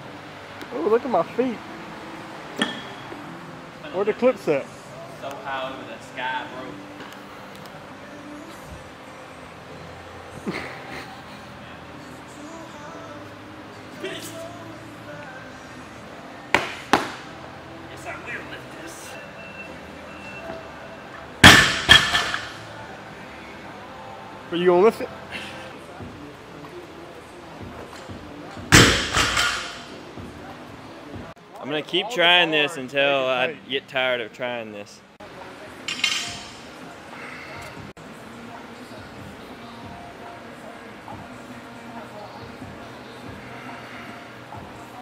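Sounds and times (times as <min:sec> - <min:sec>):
barbell crashing on rubber floor: 0:21.4 - 0:22.5, 0:28.7 - 0:29.8.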